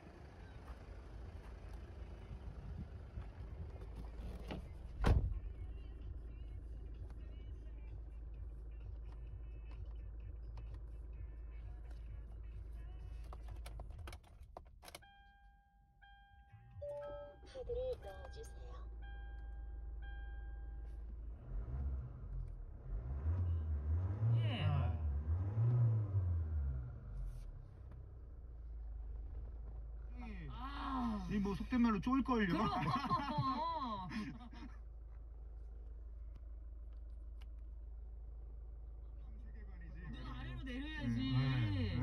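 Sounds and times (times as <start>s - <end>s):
car engine idling: 0.0s - 42.0s
dashboard warning chime: 14.9s - 21.1s.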